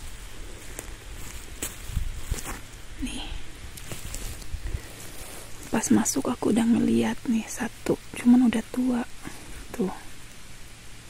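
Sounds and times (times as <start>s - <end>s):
footsteps on pine needles and twigs: 0.0s - 6.2s.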